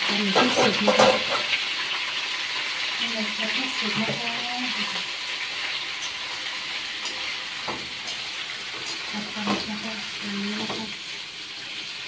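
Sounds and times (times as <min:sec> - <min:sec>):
squid sizzling in a wok: 0:00.0 - 0:12.0.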